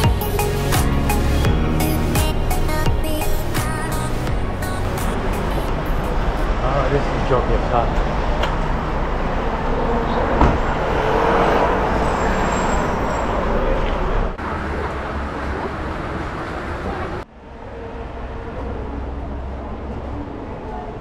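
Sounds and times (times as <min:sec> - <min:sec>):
traffic noise: 0:00.0 - 0:21.0
indistinct voices of passers-by: 0:01.8 - 0:21.0.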